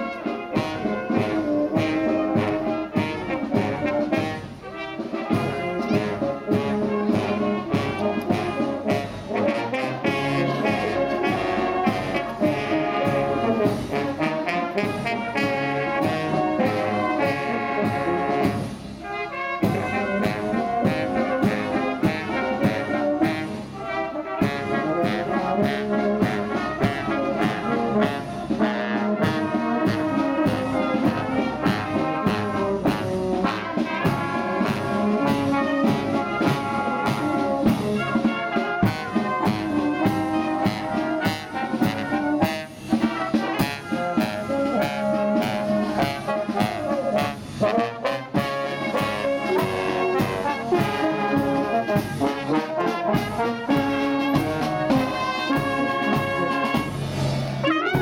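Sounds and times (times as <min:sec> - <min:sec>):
brass marching band playing: 0:00.0 - 0:58.0.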